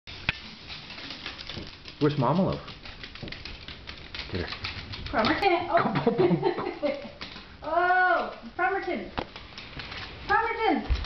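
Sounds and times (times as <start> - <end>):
dog claws pattering on hardwood floor: 0.1 - 11.0.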